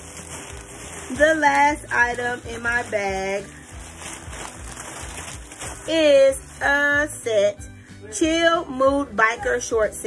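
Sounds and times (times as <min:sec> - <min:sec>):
plastic packaging crinkling: 0:00.0 - 0:07.3
soft background music: 0:00.0 - 0:10.0.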